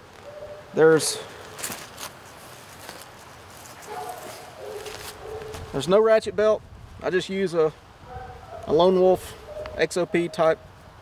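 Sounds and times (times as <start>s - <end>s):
distant road traffic hiss: 0.0s - 5.9s
faint footsteps on ground: 1.0s - 5.8s.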